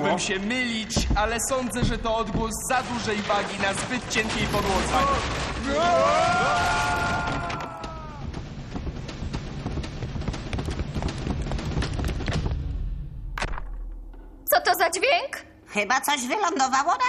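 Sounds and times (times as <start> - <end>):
wood cracking and thudding: 0.9 - 14.1.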